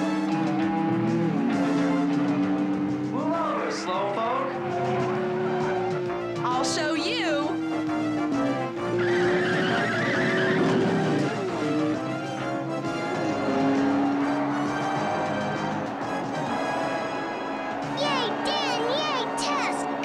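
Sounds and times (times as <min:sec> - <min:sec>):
tire screech: 0:00.0 - 0:06.7, 0:07.4 - 0:20.0
background music: 0:00.0 - 0:20.0
cartoon car engine: 0:00.0 - 0:20.0.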